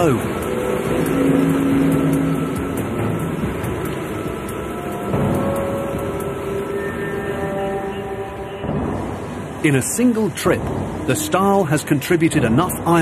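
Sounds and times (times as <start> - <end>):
background music of held notes: 0.0 - 13.0.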